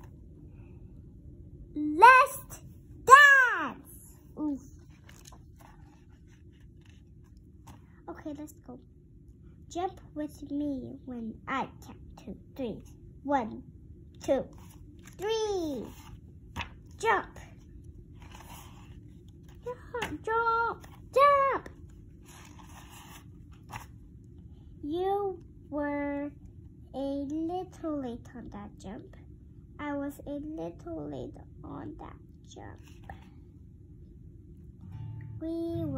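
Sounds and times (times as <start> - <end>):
child speaking: 1.8 - 4.8, 8.1 - 8.8, 9.7 - 14.5, 15.2 - 16.0, 17.0 - 17.6, 19.6 - 21.8, 24.8 - 29.2, 29.8 - 32.9, 35.3 - 35.9
book page turning: 4.5 - 8.0, 14.5 - 24.0, 32.8 - 33.3.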